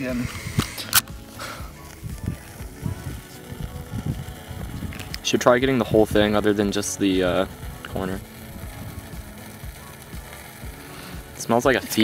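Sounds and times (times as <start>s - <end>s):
wind buffeting microphone: 0.0s - 0.8s, 2.0s - 6.5s.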